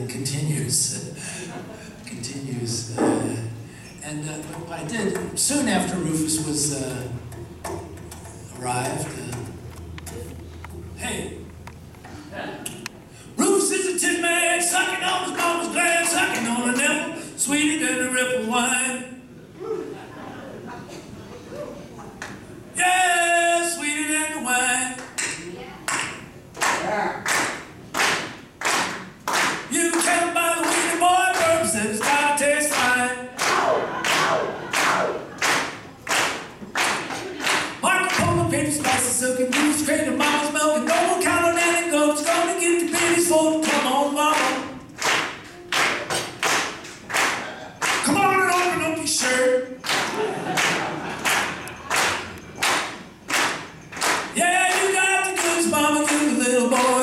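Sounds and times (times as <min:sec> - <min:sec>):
man singing unaccompanied: 0:13.4 - 0:19.1, 0:22.8 - 0:25.0, 0:29.7 - 0:33.4, 0:37.8 - 0:44.8, 0:48.0 - 0:49.8, 0:54.3 - 0:57.0
steady handclaps: 0:25.0 - 0:41.1, 0:42.2 - 0:57.0.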